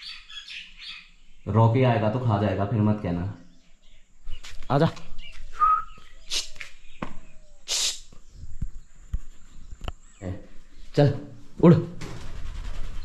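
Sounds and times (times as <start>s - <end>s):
small bird chirping: 0.0s - 1.7s, 3.0s - 11.0s
short hissing sounds: 6.3s - 6.7s, 7.6s - 8.2s.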